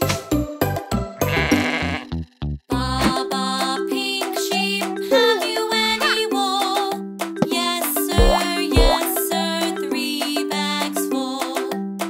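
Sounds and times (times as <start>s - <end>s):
bouncy children's music: 0.0s - 12.0s
cartoon sheep bleating: 1.2s - 2.2s.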